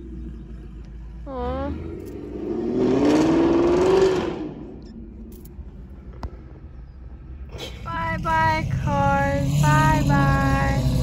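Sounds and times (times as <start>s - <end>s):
car engine accelerating hard: 0.0s - 4.8s.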